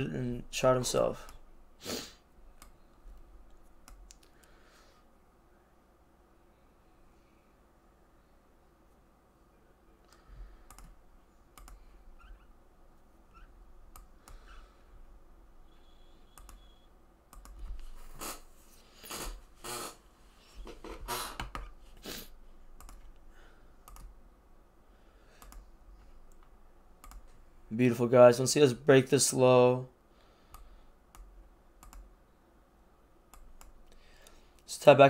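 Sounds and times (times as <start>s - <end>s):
keyboard typing: 10.1s - 12.4s, 16.2s - 17.7s, 22.8s - 23.2s, 23.8s - 24.1s, 25.4s - 25.6s, 26.3s - 27.4s, 30.5s - 32.1s
mouse clicks: 11.6s - 11.8s, 16.3s - 17.6s.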